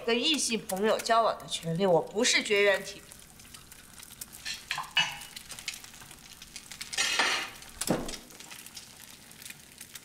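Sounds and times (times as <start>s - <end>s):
egg sizzling in a pan: 0.0s - 10.0s
metal spatula scraping a pan: 7.0s - 7.6s.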